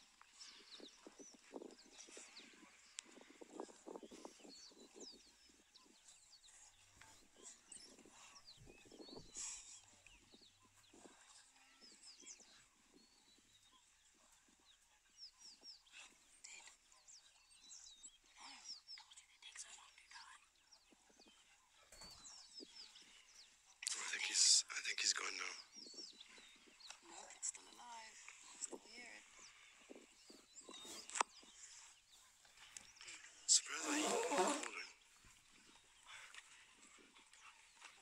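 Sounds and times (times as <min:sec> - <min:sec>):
wild dogs twittering chirps: 0:20.8 - 0:38.0.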